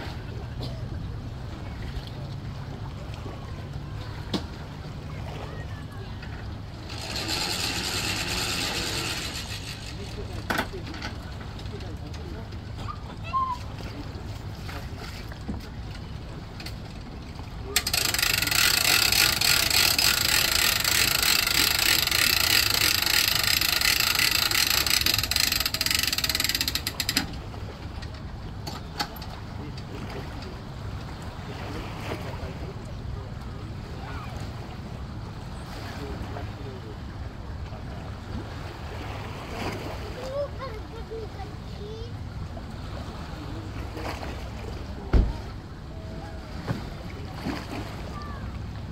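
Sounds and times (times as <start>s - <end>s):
winch strap rasping: 6.3s - 12.0s, 16.6s - 29.4s.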